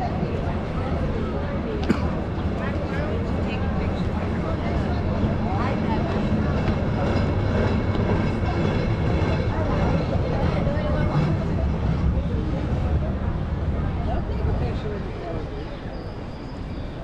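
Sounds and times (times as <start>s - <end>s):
low traffic rumble: 0.0s - 17.0s
passersby talking: 0.0s - 17.0s.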